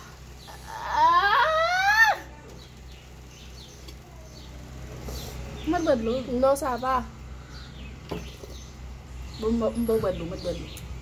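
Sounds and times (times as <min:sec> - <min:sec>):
woman wailing: 0:00.6 - 0:02.3.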